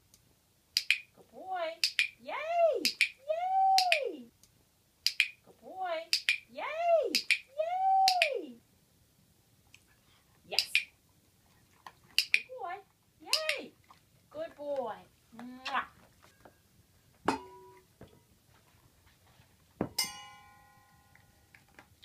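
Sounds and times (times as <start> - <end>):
dog-training clicker clicks: 0.8 - 1.0, 1.8 - 2.1, 5.1 - 5.4, 12.2 - 12.5.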